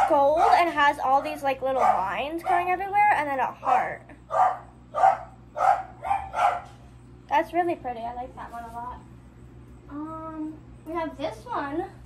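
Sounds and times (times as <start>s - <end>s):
dog barking: 0.0s - 0.7s, 1.6s - 2.7s, 4.3s - 6.8s.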